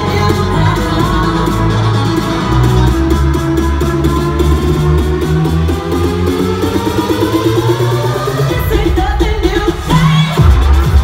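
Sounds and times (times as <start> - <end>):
sung vocal: 0.0 - 2.9
bass line: 0.0 - 11.0
house dance music: 0.0 - 11.0.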